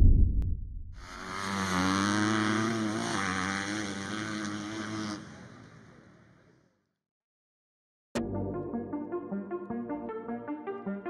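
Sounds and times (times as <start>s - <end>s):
engine running at high revs: 1.0s - 6.3s.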